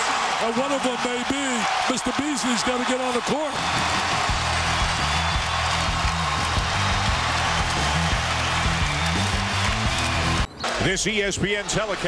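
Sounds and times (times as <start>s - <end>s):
large crowd noise: 0.0s - 12.0s
loud music with bass line: 3.6s - 10.5s.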